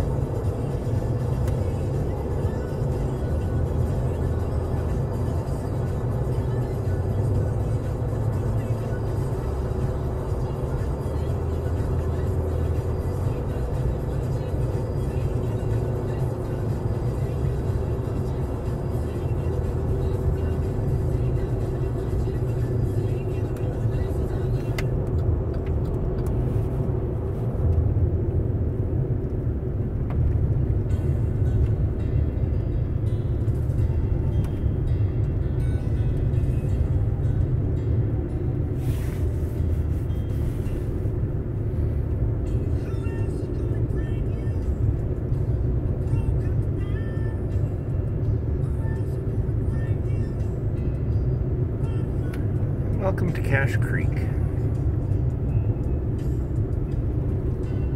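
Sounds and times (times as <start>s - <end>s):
music playing: 0.0s - 57.9s
vehicle engine and tyre rumble: 0.0s - 57.9s.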